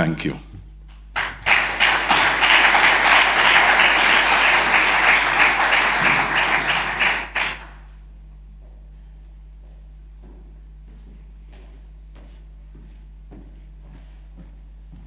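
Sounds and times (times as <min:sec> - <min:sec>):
audience applauding: 0:01.2 - 0:07.9.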